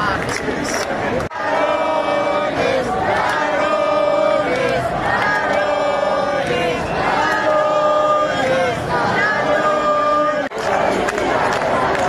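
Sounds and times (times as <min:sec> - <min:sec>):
crowd chanting in unison: 0:01.0 - 0:12.0
protesters shouting: 0:01.2 - 0:12.0.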